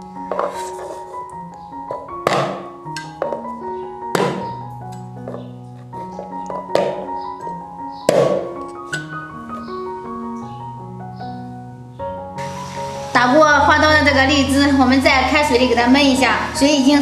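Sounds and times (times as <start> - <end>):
background music with mallet melody: 0.0 - 17.0
cleaver knocking on wooden board: 4.2 - 4.5, 6.2 - 7.1, 8.1 - 8.5.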